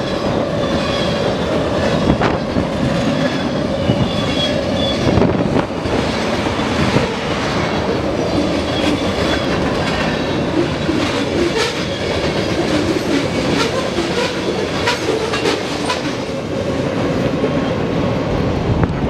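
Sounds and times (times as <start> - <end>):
wheels clacking over rail joints: 0.0 - 17.7
steel wheels rumbling on rail: 0.0 - 19.0.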